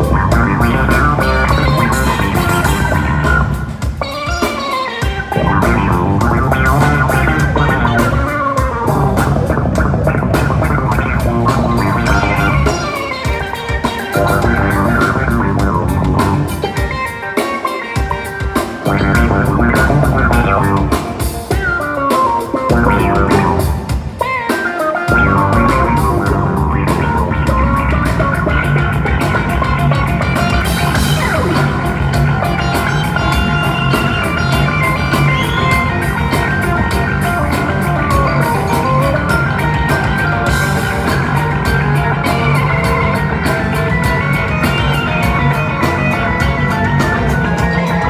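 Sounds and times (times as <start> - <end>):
bass line: 0.0 - 3.9, 5.2 - 13.1, 14.2 - 16.8, 18.8 - 21.2, 22.7 - 23.9, 25.1 - 48.0
live rock band playing: 0.0 - 48.0.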